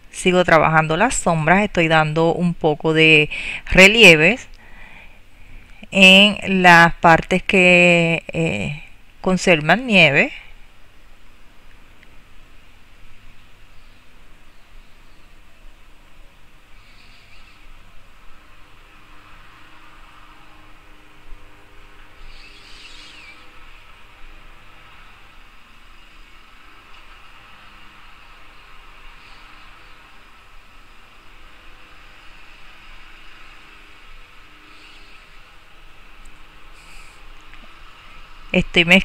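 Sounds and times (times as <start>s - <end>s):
steady hiss: 9.8s - 39.0s.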